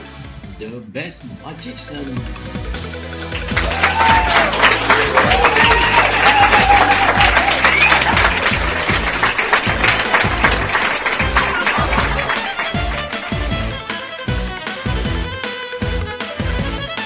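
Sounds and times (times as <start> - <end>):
background music: 0.0 - 17.0
audience applauding and cheering: 3.1 - 15.1.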